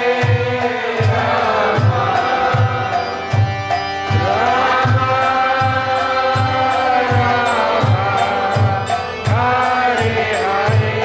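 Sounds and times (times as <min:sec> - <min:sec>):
group chanting: 0:00.0 - 0:11.0
steady drum beat: 0:00.0 - 0:11.0.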